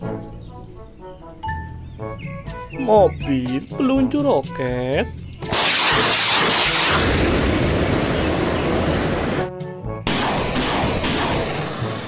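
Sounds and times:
rocket launches roaring: 5.5 - 9.5, 10.1 - 12.0.

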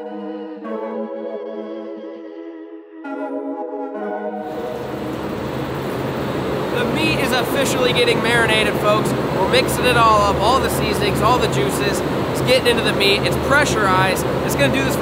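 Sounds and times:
voices: 6.7 - 15.0.

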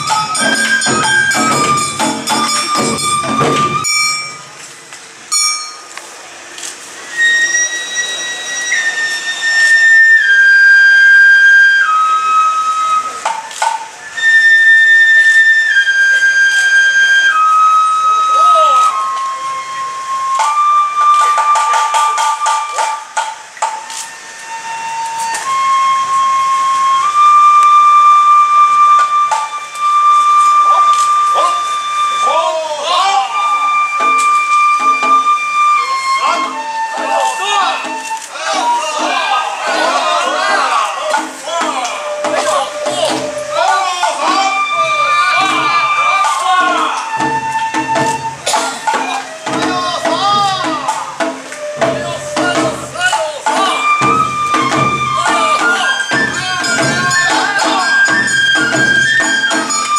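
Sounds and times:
bamboo flute melody: 0.0 - 59.9.

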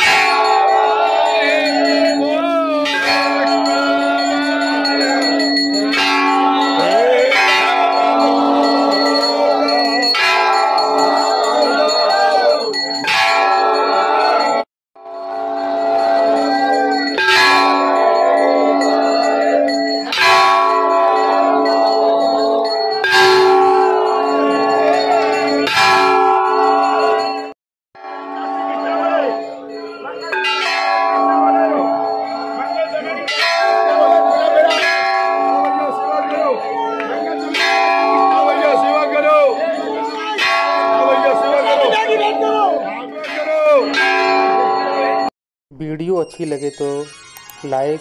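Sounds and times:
voices chanting: 0.0 - 14.6, 15.6 - 27.5, 28.2 - 45.3
brass temple bells ringing: 0.0 - 48.0.

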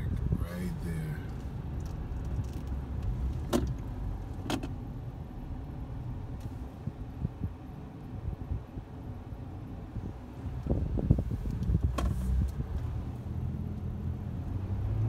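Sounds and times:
man's voice: 0.0 - 1.3
engine and road rumble: 0.0 - 15.0.

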